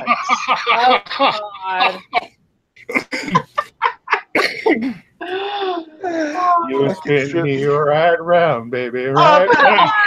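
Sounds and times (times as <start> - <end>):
people laughing: 0.0 - 2.2, 3.0 - 4.5, 9.2 - 10.0.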